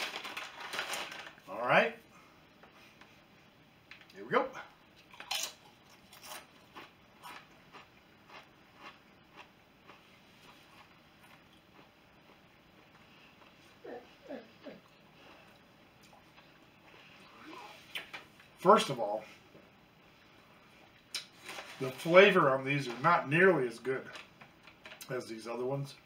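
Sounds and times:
tortilla chip crunching: 5.0 - 13.6.

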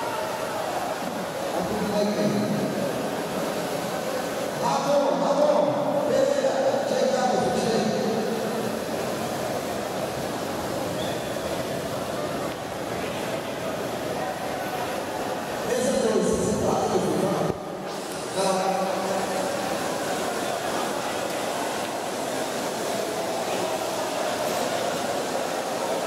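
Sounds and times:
crowd murmur in a large hall: 0.0 - 26.0.

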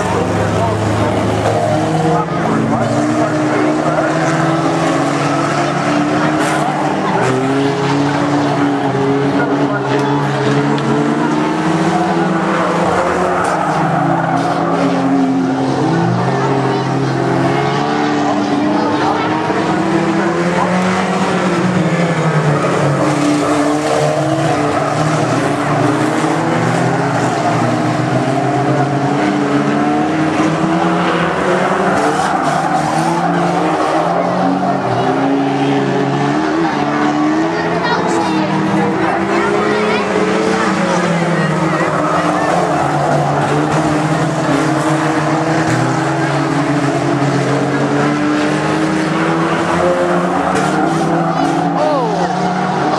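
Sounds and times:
racing car engines revving: 0.0 - 52.9.

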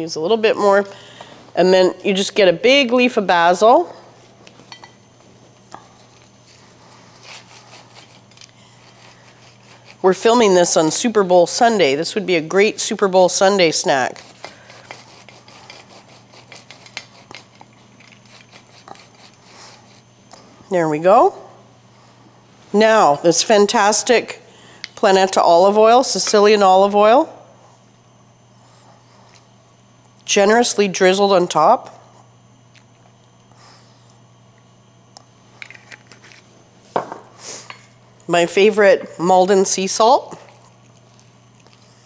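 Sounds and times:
bottle knocking on wooden counter: 37.0 - 37.2.

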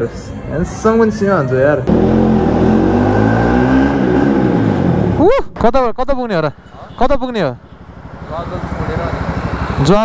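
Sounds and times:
motorcycle engine running: 1.9 - 5.2, 7.6 - 10.0.

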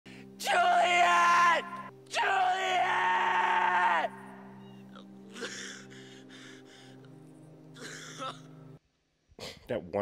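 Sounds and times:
man screaming in anguish: 0.4 - 4.4.

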